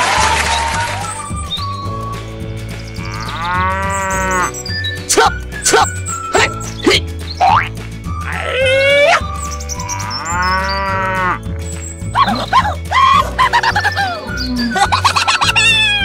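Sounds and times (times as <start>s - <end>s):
cow mooing: 3.0s - 4.5s, 9.8s - 11.4s.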